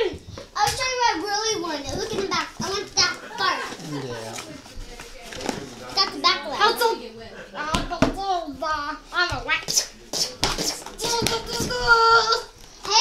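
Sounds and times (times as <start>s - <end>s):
young children chattering: 0.0s - 13.0s.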